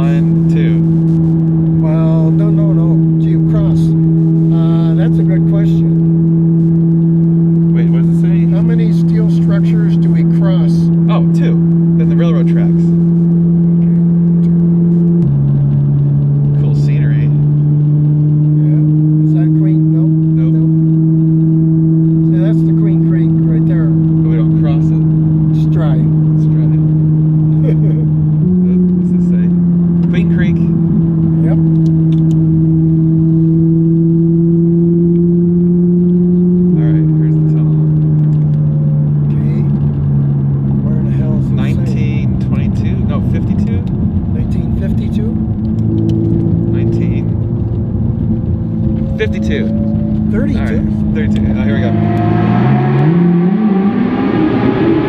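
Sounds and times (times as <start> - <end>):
car engine drone from cabin: 0.0 - 55.0.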